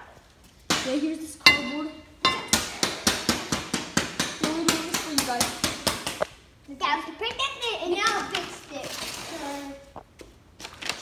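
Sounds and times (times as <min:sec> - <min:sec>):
voices: 0:00.7 - 0:03.3, 0:04.4 - 0:09.9.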